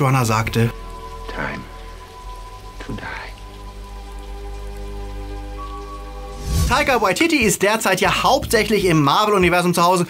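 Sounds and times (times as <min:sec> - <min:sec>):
steady rain: 0:00.0 - 0:09.4
quiet voice: 0:02.8 - 0:03.4.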